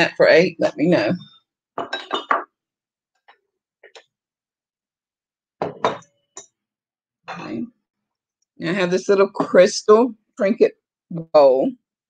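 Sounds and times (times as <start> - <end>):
ceramic dishes clinking: 1.8 - 2.5, 5.6 - 6.2.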